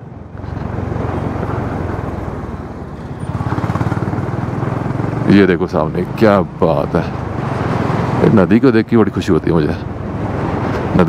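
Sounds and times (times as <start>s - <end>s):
motorcycle engine rumbling: 0.0s - 10.9s
road and air noise: 0.0s - 11.0s.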